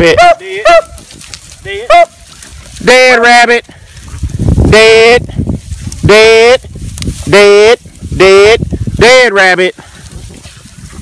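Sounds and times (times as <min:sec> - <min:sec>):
beagles baying: 0:00.0 - 0:02.6.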